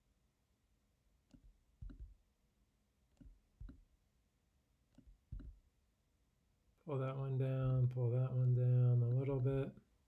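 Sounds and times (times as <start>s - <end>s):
computer mouse clicks: 1.2s - 2.2s, 3.1s - 3.9s, 4.9s - 5.6s.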